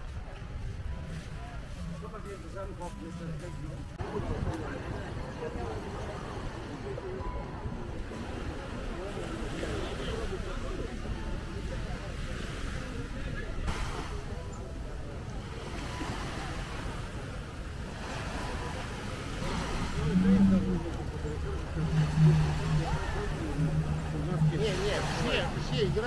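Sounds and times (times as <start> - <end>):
faint voices: 0.0 - 26.0
light surf: 0.0 - 26.0
wind: 0.0 - 26.0
jet ski engine droning: 13.6 - 26.0.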